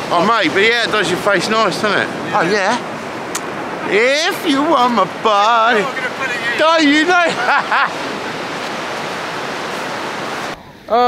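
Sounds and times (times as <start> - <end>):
sea surf washing on beach: 0.0 - 11.0.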